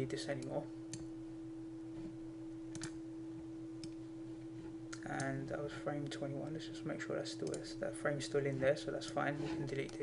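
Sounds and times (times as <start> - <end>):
steady electrical hum: 0.0 - 10.0
computer mouse clicks: 2.7 - 3.0, 7.4 - 7.6.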